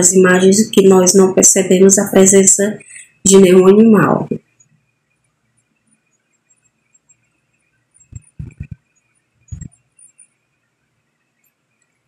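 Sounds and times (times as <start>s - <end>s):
fingers tapping on phone: 8.0s - 8.9s, 9.5s - 9.8s.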